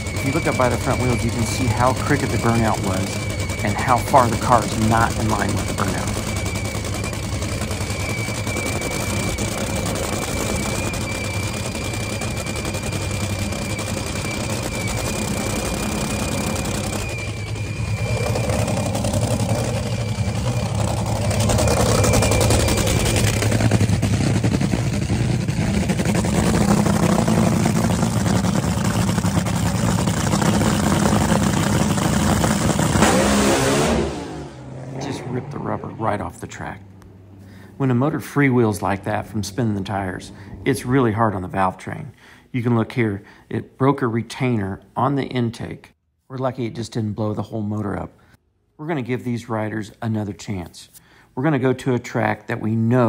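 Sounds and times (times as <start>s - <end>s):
dragster engine rumble: 0.0s - 41.9s.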